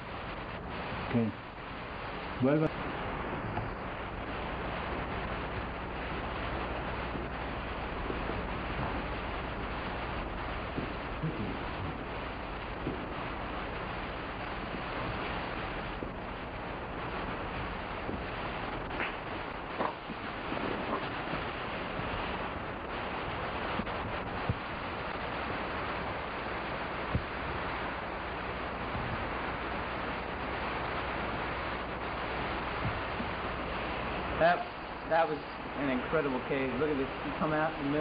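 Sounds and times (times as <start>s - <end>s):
heavy rain hiss: 0.0s - 38.0s.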